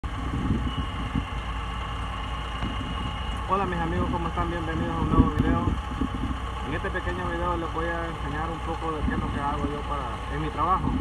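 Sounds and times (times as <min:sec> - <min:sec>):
heavy diesel engines rumbling: 0:00.0 - 0:11.0.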